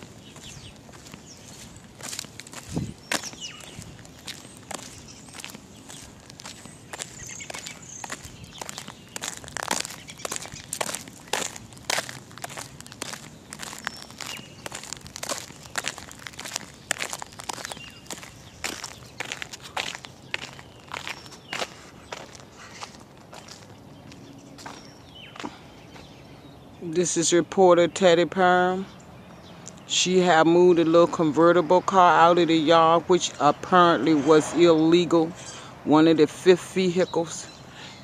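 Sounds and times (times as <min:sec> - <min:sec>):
footsteps on gritty pavement: 0:00.0 - 0:26.3.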